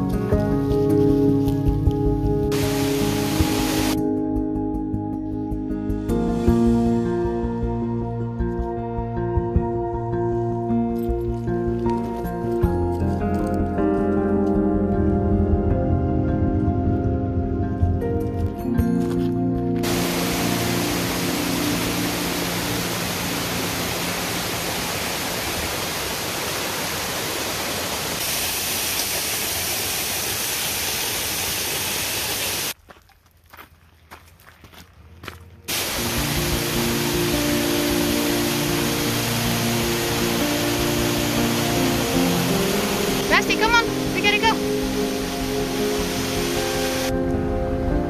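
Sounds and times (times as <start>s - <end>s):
background music: 0.0s - 25.2s, 35.5s - 48.0s
waterfall roaring: 2.5s - 4.0s, 19.8s - 32.8s, 35.7s - 47.1s.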